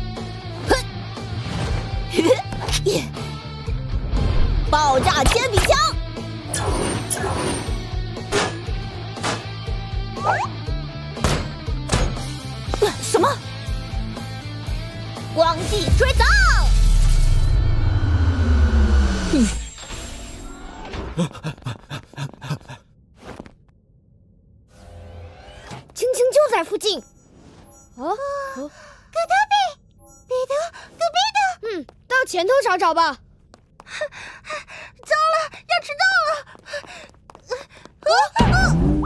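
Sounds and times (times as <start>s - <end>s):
background music: 0.0s - 16.8s.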